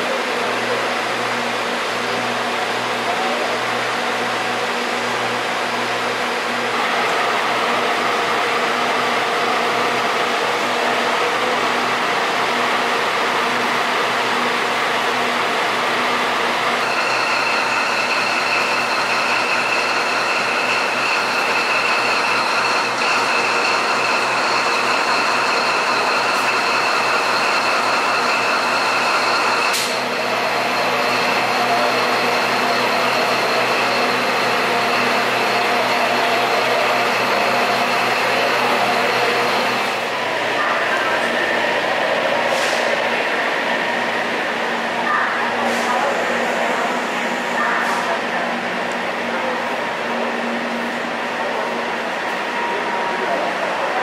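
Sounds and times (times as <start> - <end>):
high-pitched whine: 16.5 - 39.9.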